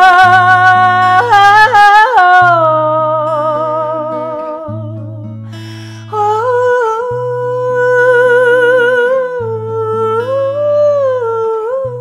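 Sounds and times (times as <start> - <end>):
acoustic guitar chords: 0.0 - 12.0
woman singing wordless melody: 0.0 - 12.0.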